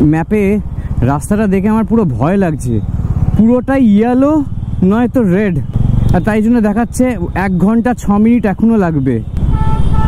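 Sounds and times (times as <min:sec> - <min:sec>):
motorcycle engine running: 0:00.0 - 0:08.4
man talking: 0:00.0 - 0:09.3.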